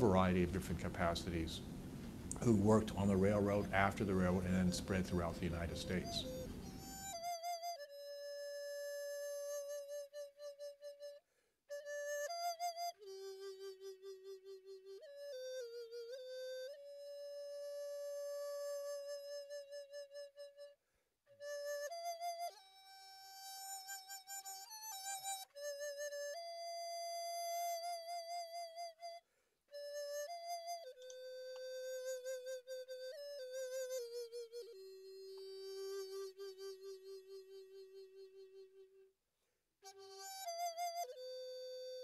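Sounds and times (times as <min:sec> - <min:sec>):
flute playing: 0:02.4 - 0:20.8, 0:21.4 - 0:39.1, 0:39.8 - 0:42.0.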